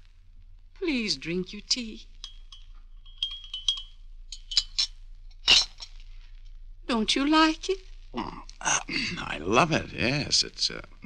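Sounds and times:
teacup and spoon clinking: 0:02.2 - 0:05.9.

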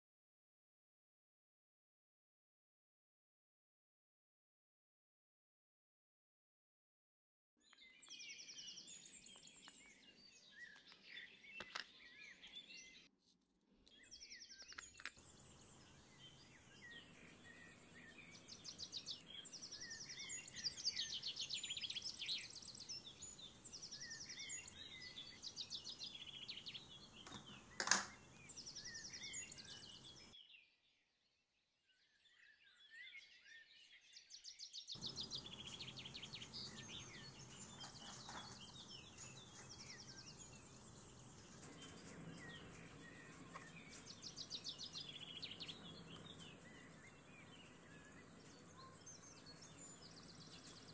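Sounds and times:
small birds chirping: 0:07.6 - 0:13.1, 0:13.8 - 0:31.0, 0:31.8 - 0:50.9.

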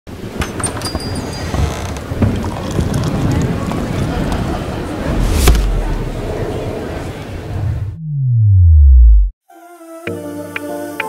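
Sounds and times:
steady low rumble: 0:03.2 - 0:09.3.

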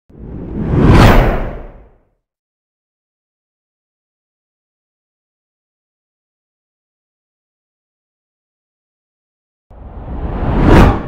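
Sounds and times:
whoosh: 0:00.1 - 0:01.9, 0:09.8 - 0:11.0.

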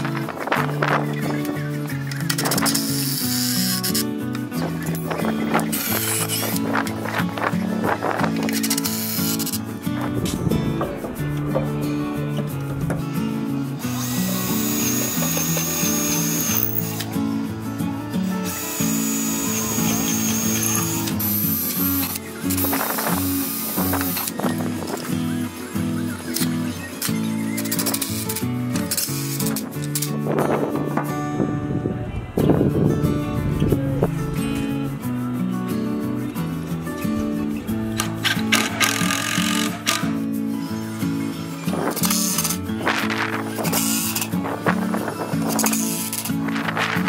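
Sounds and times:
background music with steady beat: 0:00.0 - 0:47.0
cordless drill drilling into wood: 0:02.3 - 0:04.1, 0:05.6 - 0:06.8, 0:08.4 - 0:09.6, 0:13.9 - 0:17.1, 0:18.4 - 0:24.6, 0:38.2 - 0:40.0
cordless driver driving screw into wood: 0:14.0 - 0:17.1.

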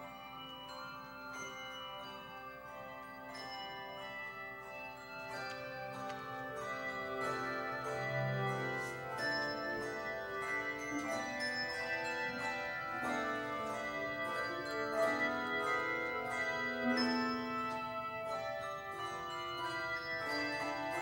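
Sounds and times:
handbell choir ringing: 0:00.0 - 0:21.0.

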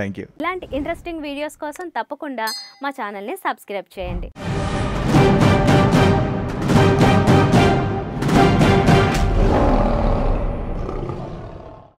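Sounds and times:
lion roar: 0:09.2 - 0:12.0.

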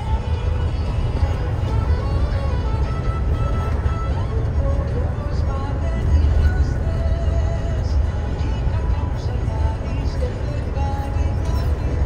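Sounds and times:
bus engine and road rumble: 0:00.0 - 0:12.0
faint music: 0:00.0 - 0:12.0.

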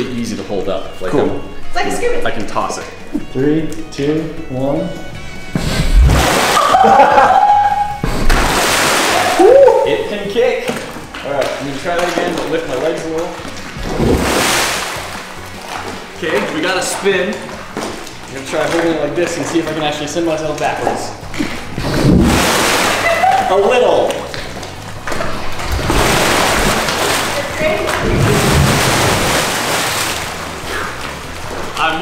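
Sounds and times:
background music: 0:00.0 - 0:32.0
fire extinguisher hissing underwater: 0:05.5 - 0:06.4.

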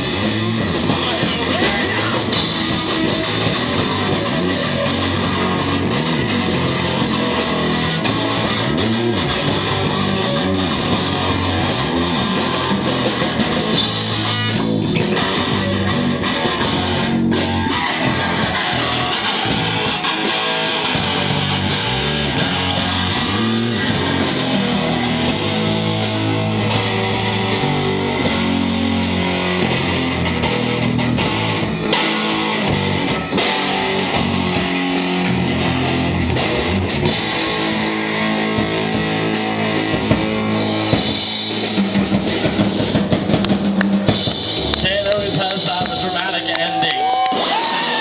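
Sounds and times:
drum and cymbal hits: 0:00.0 - 0:46.5
rock band playing live: 0:00.0 - 0:48.0.

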